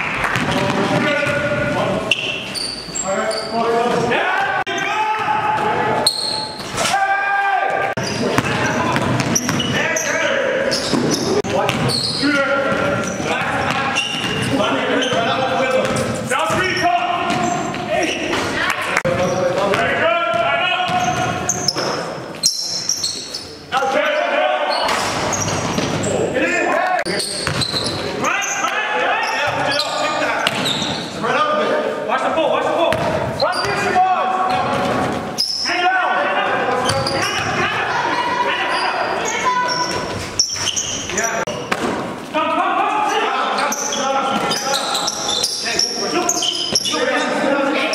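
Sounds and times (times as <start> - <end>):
sneakers squeaking: 0.0 - 7.1, 7.7 - 31.3, 32.8 - 35.8, 36.5 - 42.3, 43.2 - 47.9
players calling out: 0.0 - 47.9
basketball bouncing on gym floor: 0.2 - 1.8, 8.2 - 9.7, 10.8 - 12.0, 27.4 - 27.9, 32.9 - 33.8.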